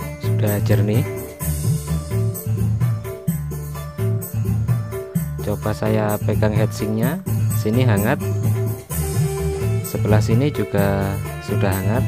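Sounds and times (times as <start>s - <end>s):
music with heavy bass and beat: 0.0s - 12.0s.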